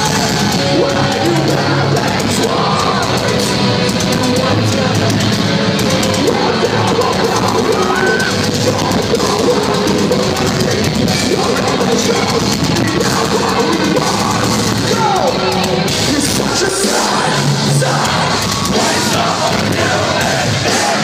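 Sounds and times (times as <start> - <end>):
metal band playing live: 0.0 - 21.0.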